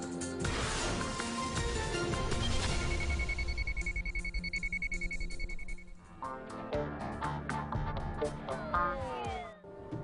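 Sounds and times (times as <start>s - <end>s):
high electronic beep pulsing: 2.3s - 6.0s.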